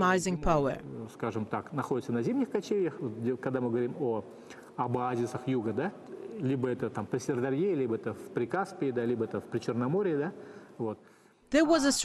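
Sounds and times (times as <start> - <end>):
man speaking: 0.8 - 11.1.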